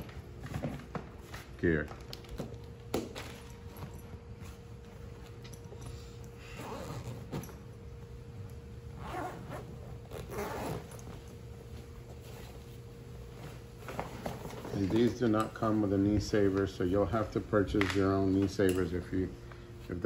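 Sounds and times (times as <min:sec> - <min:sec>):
gear shifting inside bag: 0:03.2 - 0:07.8, 0:08.9 - 0:11.4
zipper of bag pulled open: 0:06.5 - 0:07.6, 0:09.0 - 0:11.0.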